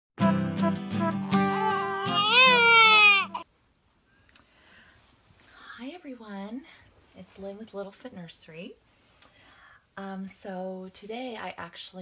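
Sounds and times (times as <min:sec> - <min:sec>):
baby wailing: 0:01.2 - 0:03.4.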